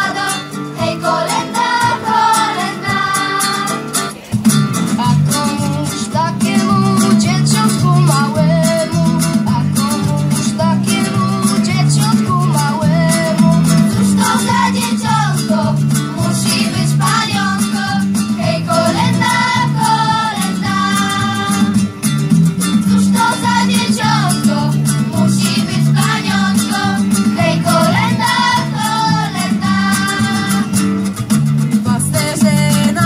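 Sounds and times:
children's choir singing: 0.0 - 4.2, 10.4 - 21.8, 23.0 - 30.8
guitar accompaniment: 0.0 - 33.0.

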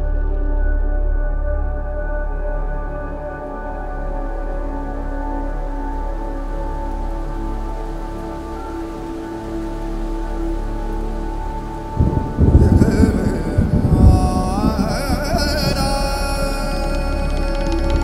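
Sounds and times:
ambient music drone: 0.0 - 18.0
rain hiss: 3.4 - 18.0
thunder rumble: 11.9 - 18.0.

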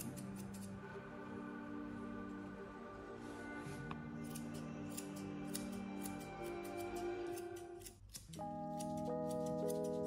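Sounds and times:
scissors snipping hair: 0.0 - 0.8, 4.2 - 10.0
background music: 0.0 - 10.0.

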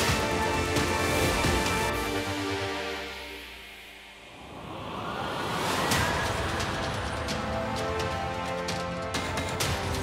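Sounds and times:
rising noise whoosh: 3.1 - 6.8.

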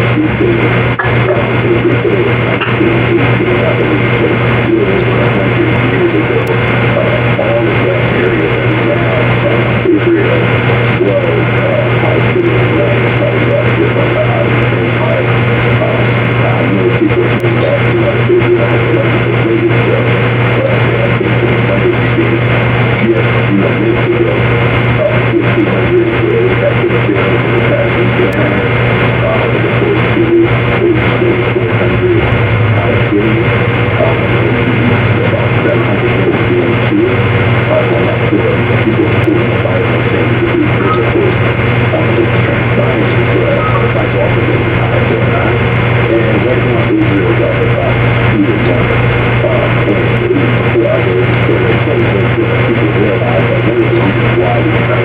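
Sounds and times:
indistinct wavering murmur: 0.0 - 55.0
loud low hum: 0.0 - 55.0.

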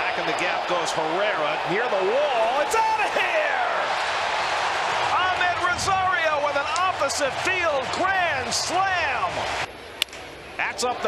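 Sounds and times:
large crowd cheering: 0.0 - 9.7.

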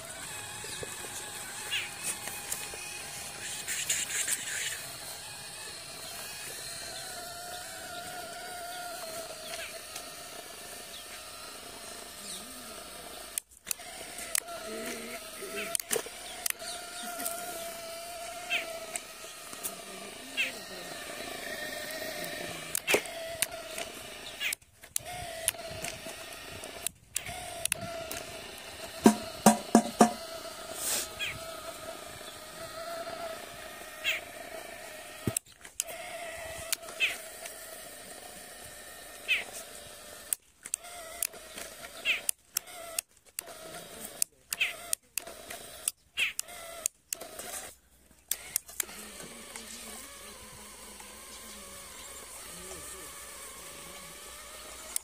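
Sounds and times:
small electric motor whining: 0.0 - 55.0
scattered clicks: 13.2 - 19.8, 20.4 - 30.2, 40.3 - 55.0
sharp knocks: 29.0 - 30.2.

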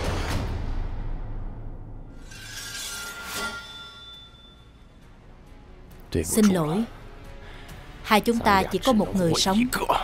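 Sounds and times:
high ringing tone: 2.3 - 4.8.

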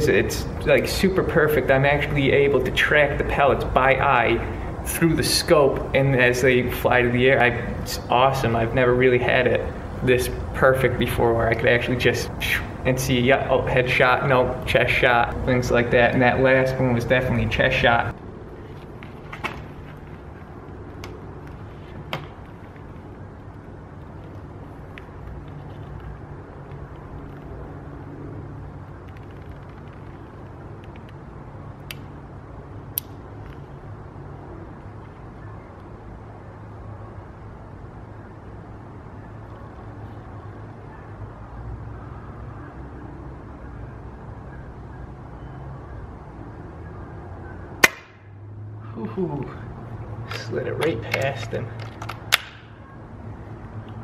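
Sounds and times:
low outdoor background hum: 0.0 - 54.0.

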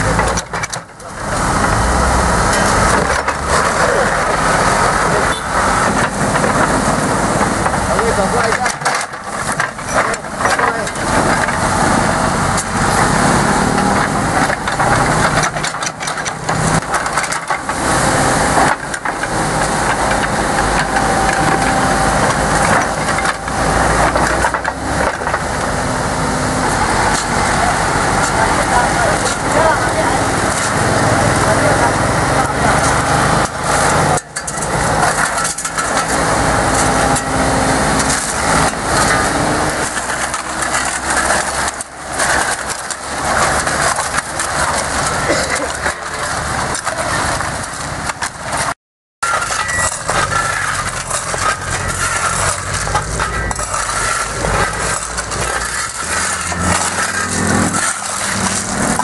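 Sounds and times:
people talking: 0.0 - 9.1, 9.7 - 15.5, 19.1 - 39.8, 44.9 - 47.3
excavator diesel engine running: 0.0 - 59.0.

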